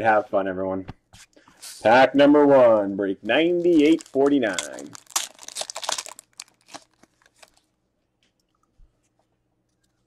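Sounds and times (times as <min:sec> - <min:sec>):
foil wrapper tearing and crinkling: 0:03.5 - 0:07.7.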